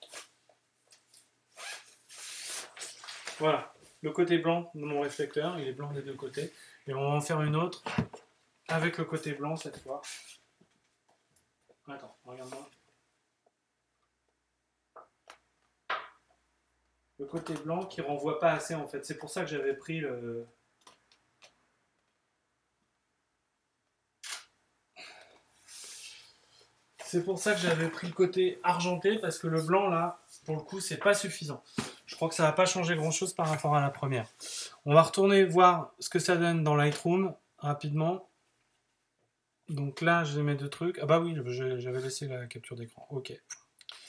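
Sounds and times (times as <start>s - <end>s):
zipper being pulled: 1.5s - 3.3s.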